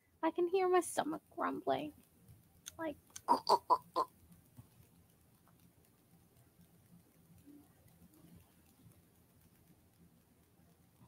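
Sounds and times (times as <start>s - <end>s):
person imitating stomach grumbling: 3.3s - 4.1s.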